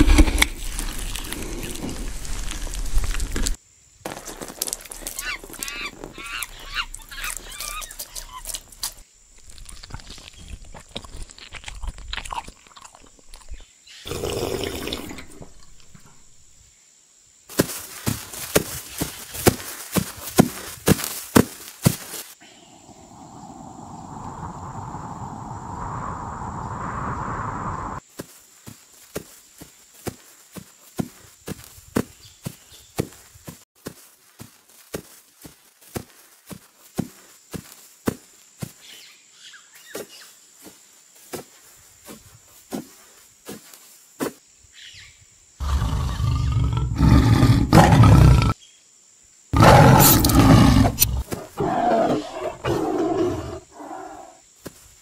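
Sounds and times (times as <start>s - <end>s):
sharp regular footsteps: 0.0s - 12.4s, 17.5s - 22.4s, 28.1s - 38.9s.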